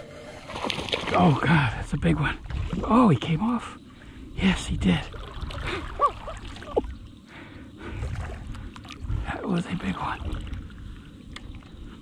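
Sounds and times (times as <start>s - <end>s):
water lapping around kayak: 0.0s - 12.0s
steady low rumble: 1.4s - 12.0s.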